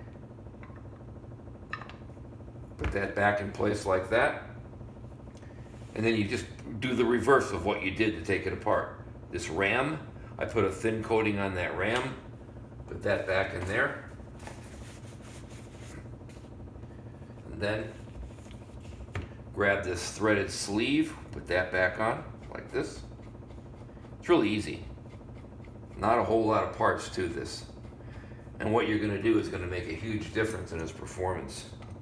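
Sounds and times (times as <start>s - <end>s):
low room hum: 0.0s - 32.0s.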